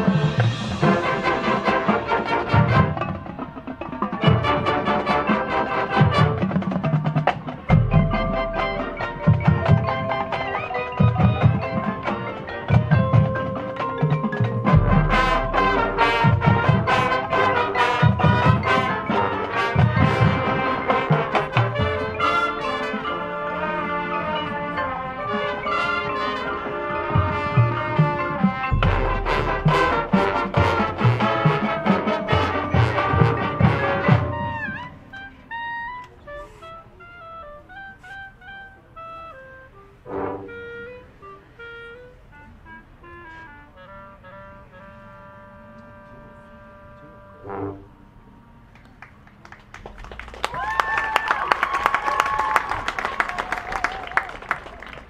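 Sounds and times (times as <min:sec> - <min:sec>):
drumline hits: 0:00.0 - 0:22.8, 0:26.7 - 0:35.1
marching band brass: 0:00.0 - 0:55.0.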